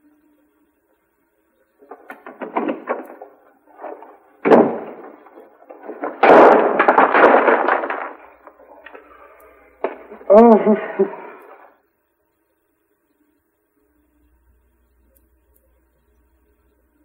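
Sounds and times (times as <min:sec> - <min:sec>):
clatter of knocks and rattling: 0:01.8 - 0:09.0
door slamming: 0:01.9 - 0:08.2.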